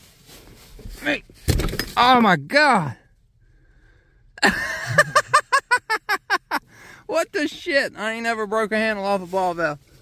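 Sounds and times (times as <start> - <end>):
man laughing: 4.4 - 6.7.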